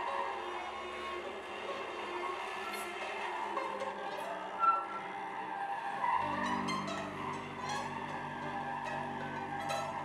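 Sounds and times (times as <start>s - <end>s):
experimental music held tones: 6.1s - 10.0s.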